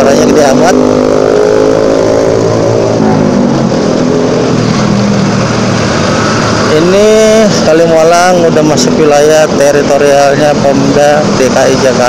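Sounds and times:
loud motorcycle engine: 0.0s - 12.0s.

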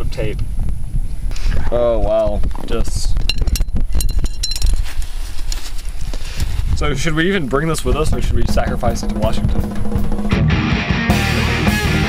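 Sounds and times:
wind rumbling on microphone: 0.0s - 10.4s
tent poles clinking: 3.2s - 6.5s.

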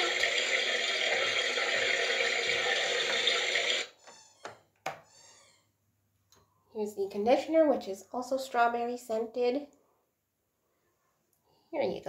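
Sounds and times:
water running: 0.0s - 3.9s.

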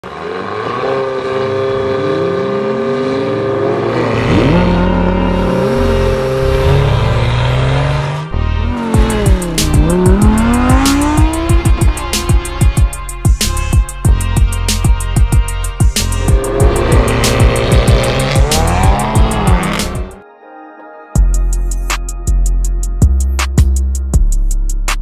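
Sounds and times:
car engines revving: 0.0s - 12.8s, 15.4s - 20.2s
music: 4.0s - 25.0s
music with sharp fast hits: 8.9s - 20.2s, 21.2s - 25.0s.

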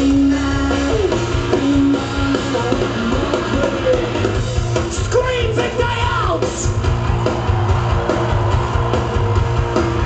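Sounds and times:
electric guitar: 0.0s - 5.0s
bass guitar: 0.0s - 10.0s
drum kit: 0.0s - 10.0s.

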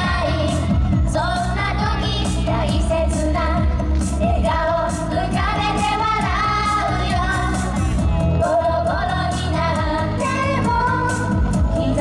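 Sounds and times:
pop backing track: 0.0s - 12.0s
women singing pop song: 0.0s - 12.0s.

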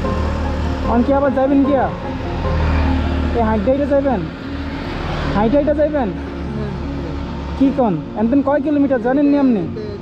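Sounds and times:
man speaking: 5.4s - 10.0s.

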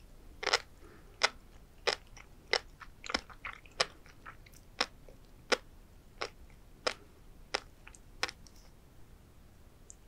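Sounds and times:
food popping between teeth: 0.4s - 4.9s.

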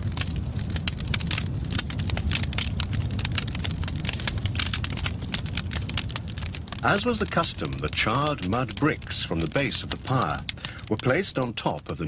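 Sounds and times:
fire crackling: 0.0s - 12.0s
low fire rumble: 0.0s - 12.0s.

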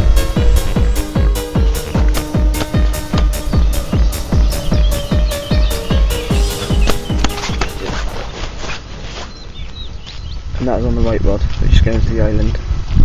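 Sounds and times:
electronic dance music: 0.0s - 8.2s
bird chirps: 0.0s - 10.5s.

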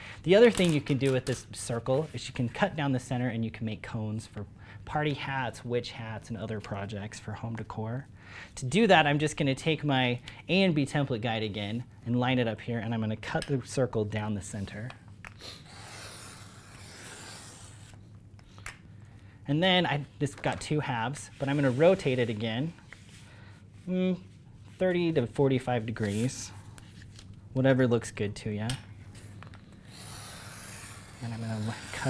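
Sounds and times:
craft blade slicing poster board: 15.5s - 18.0s, 29.9s - 32.0s.

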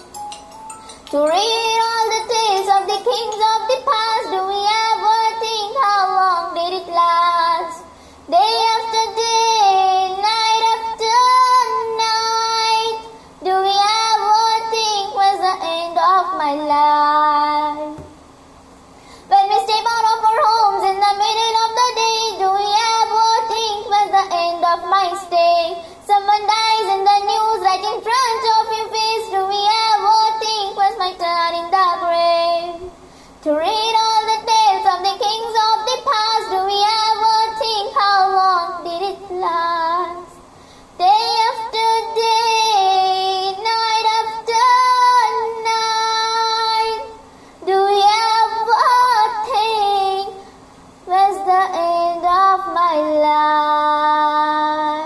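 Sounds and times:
girl singing devotional song: 0.0s - 55.0s.

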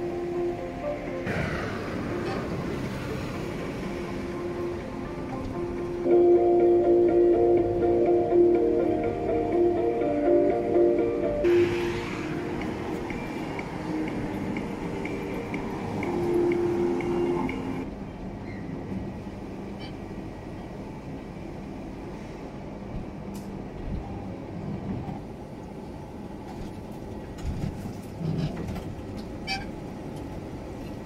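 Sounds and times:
background music: 0.0s - 17.9s.

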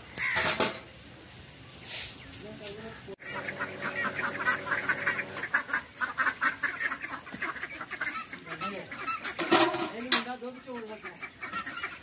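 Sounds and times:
ducks quacking: 2.9s - 12.0s.

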